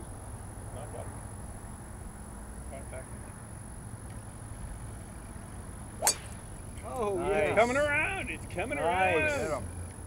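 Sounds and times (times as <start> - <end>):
golf club striking ball: 6.0 - 6.9.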